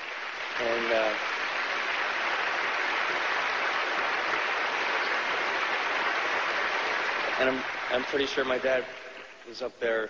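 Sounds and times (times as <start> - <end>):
large audience applauding: 0.0 - 9.6.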